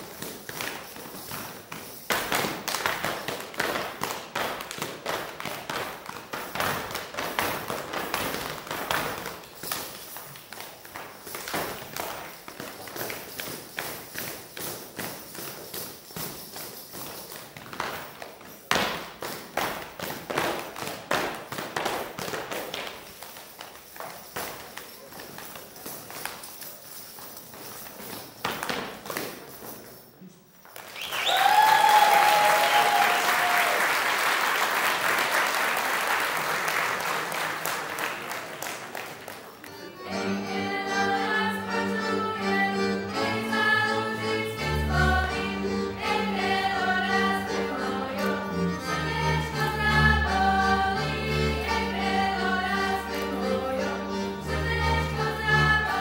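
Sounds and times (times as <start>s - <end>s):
whistles from audience: 30.8s - 34.2s
audience applause: 30.8s - 39.8s.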